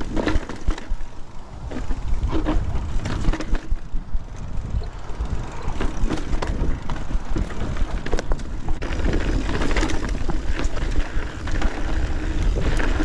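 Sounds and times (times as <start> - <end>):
bike rattling over rocks: 0.0 - 13.0
bike tyres rolling over dirt: 0.0 - 13.0.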